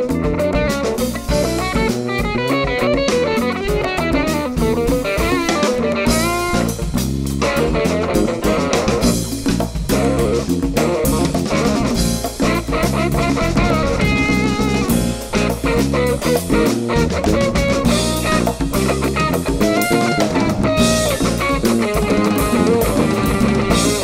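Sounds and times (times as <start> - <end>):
drum kit beat: 0.0 - 24.0
electric guitars: 0.0 - 24.0
funk band playing: 0.0 - 24.0.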